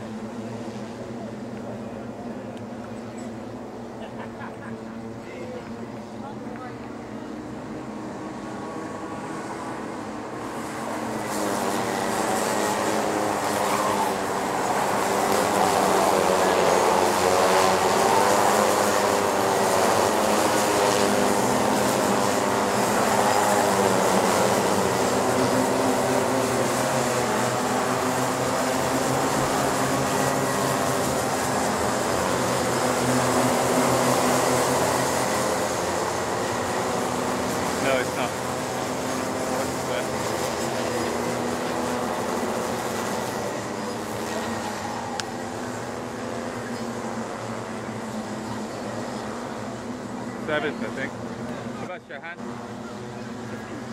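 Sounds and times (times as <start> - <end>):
kart engines racing: 0.0 - 53.9.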